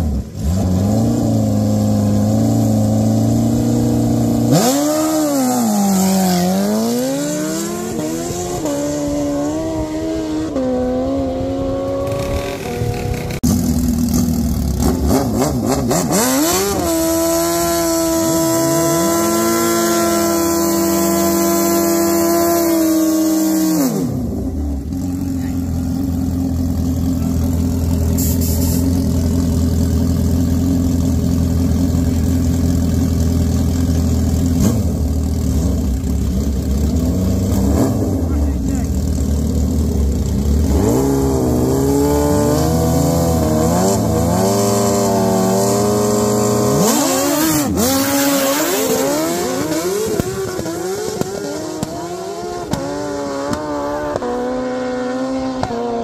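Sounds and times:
motorcycle engine revving: 0.0 - 56.0
motorcycles accelerating away: 0.0 - 56.0.

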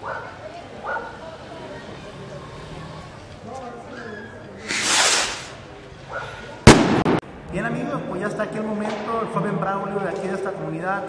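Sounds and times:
skyrocket firework hissing: 4.6 - 5.7
firework loud bang: 4.7 - 5.5, 6.6 - 7.3.

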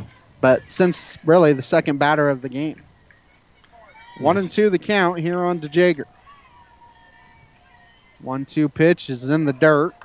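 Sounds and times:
faint broadcast background sound: 0.0 - 10.0.

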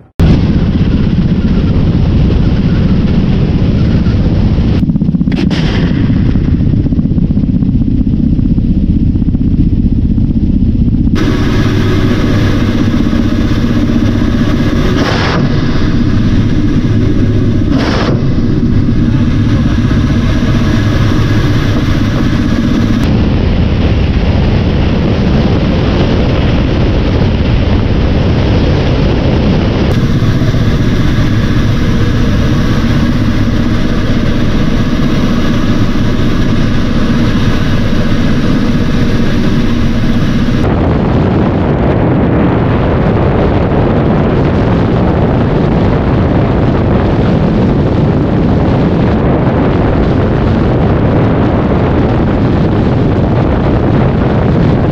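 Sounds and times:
helicopter engine and rotor noise: 0.0 - 54.9.

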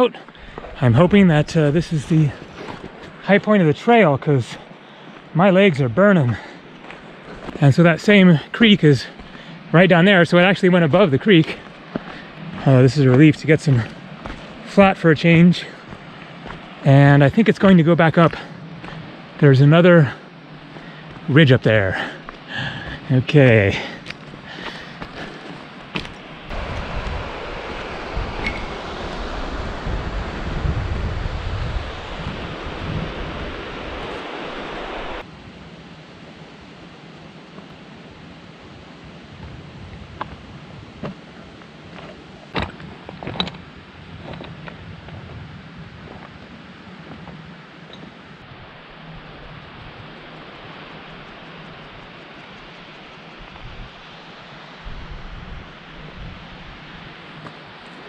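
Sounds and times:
steady rush of wind: 0.0 - 58.0
footsteps on stones: 0.3 - 0.8, 2.0 - 3.2, 6.3 - 7.6, 11.6 - 14.6, 15.8 - 16.7, 22.2 - 23.0, 23.8 - 26.3
wind buffeting microphone: 26.5 - 35.5, 38.1 - 54.0, 54.8 - 57.4.

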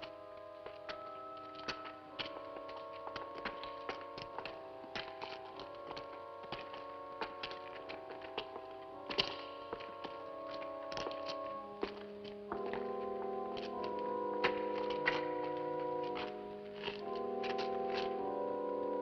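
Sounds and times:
sharp taps and clicks: 0.6 - 18.2
film score chords: 10.2 - 19.0.

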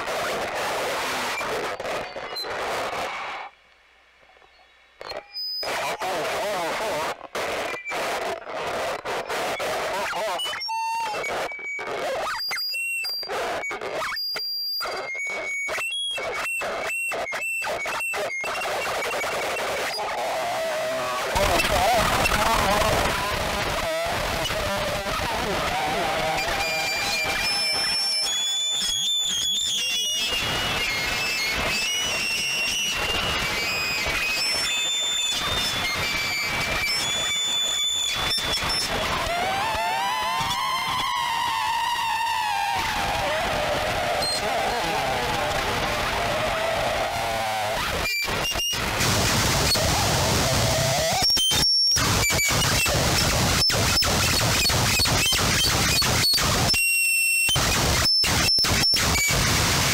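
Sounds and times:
harsh noise with piercing feedback: 0.0 - 59.9.

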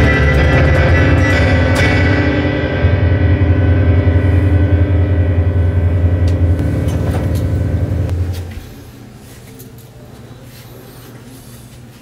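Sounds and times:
deep piano chord ringing: 0.0 - 8.8.

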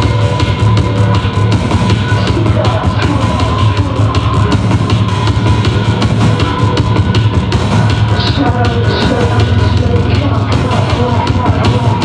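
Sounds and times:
industrial techno on synthesizers: 0.0 - 12.0.

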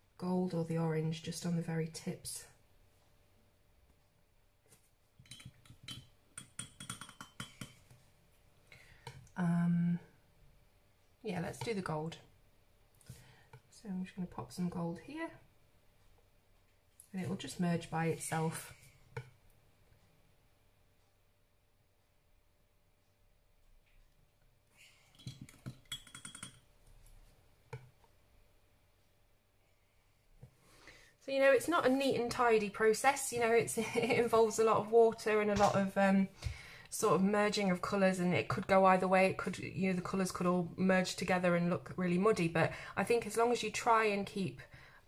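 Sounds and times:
paintbrush clinking in glass jar: 5.2 - 7.8, 25.2 - 26.6.

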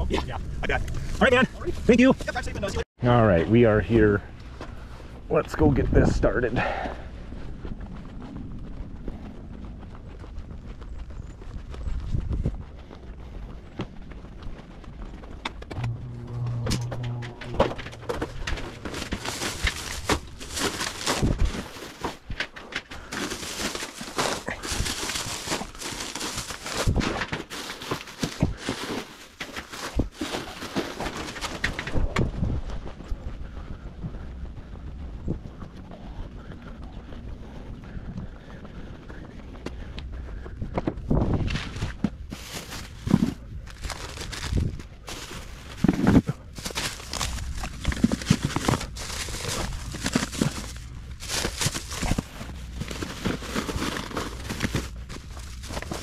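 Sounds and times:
footsteps on pavement: 6.5 - 16.4, 32.4 - 56.0
grocery bags crinkling: 18.0 - 31.8, 42.3 - 56.0.

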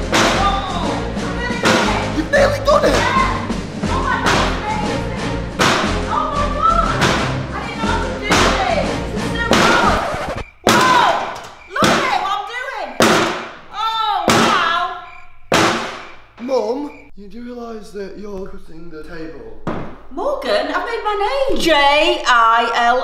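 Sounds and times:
background music: 0.0 - 10.4
axe striking steel safe: 5.6 - 6.0, 7.0 - 7.4.

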